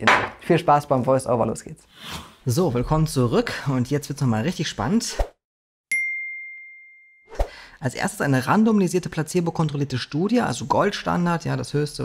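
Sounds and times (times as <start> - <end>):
bright bell-like ding: 5.9 - 7.3.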